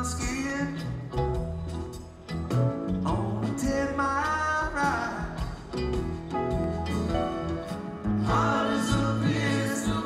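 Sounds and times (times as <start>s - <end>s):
bass guitar: 0.0s - 10.0s.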